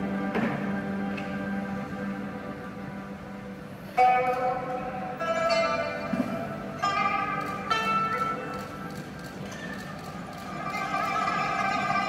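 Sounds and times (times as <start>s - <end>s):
held melody notes: 0.0s - 9.0s, 10.2s - 12.0s
traditional orchestra playing: 0.0s - 9.0s, 10.3s - 12.0s.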